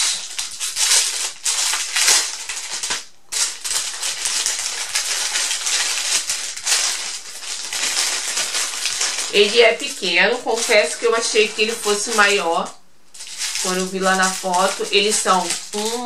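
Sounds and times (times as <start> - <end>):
plastic packaging crinkling: 0.0 - 16.0.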